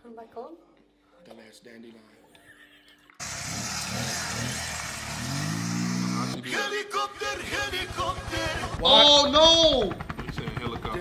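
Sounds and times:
vehicle engine revving: 0:03.2 - 0:06.5.

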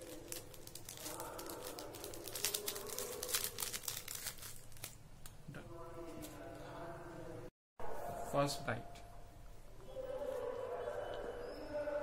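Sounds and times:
packaging crinkling: 0:00.0 - 0:05.0.

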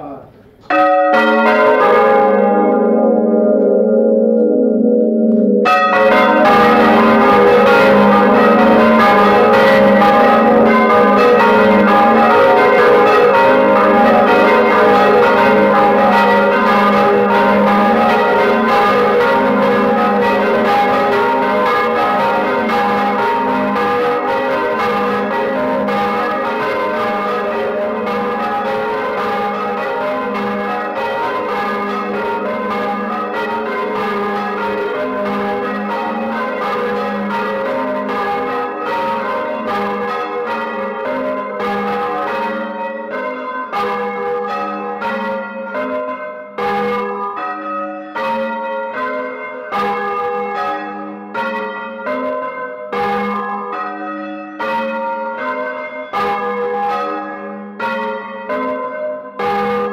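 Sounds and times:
church bells ringing: 0:00.0 - 0:59.9.

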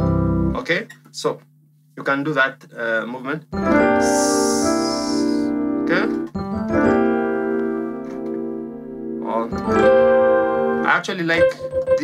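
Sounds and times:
piano chord ringing: 0:03.5 - 0:12.0.

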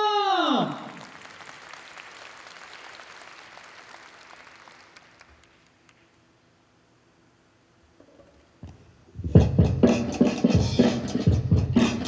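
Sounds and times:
audience applause: 0:00.8 - 0:05.9.

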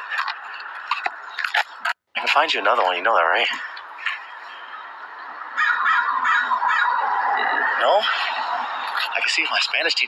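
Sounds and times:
crow cawing: 0:05.5 - 0:07.2.

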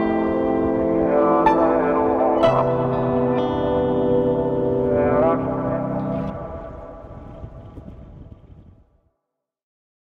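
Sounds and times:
background music: 0:00.0 - 0:08.0
wind rumble on microphone: 0:00.0 - 0:09.1.

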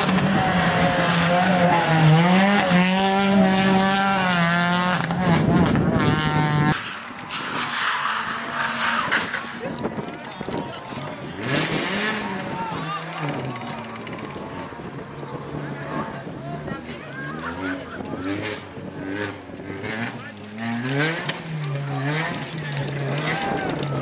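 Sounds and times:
car engine running and revving: 0:00.0 - 0:24.0
people shouting: 0:08.9 - 0:14.8, 0:23.0 - 0:24.0.

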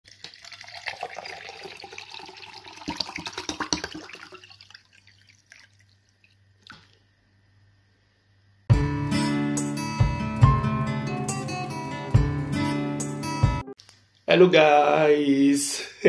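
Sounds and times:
water pouring into a glass: 0:00.1 - 0:06.4.

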